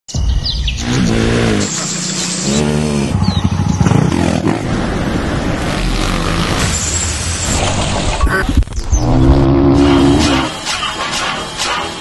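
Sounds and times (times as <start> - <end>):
birds chirping: 0.1 - 10.5
dirt bike engines revving: 0.8 - 8.2.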